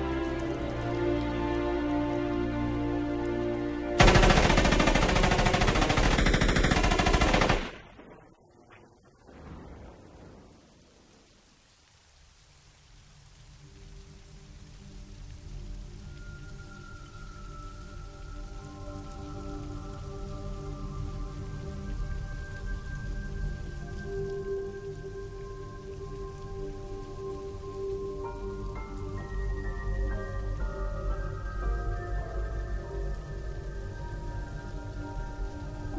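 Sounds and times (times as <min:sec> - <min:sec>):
film score held notes: 0:00.0 - 0:35.9
steady rain: 0:00.0 - 0:35.9.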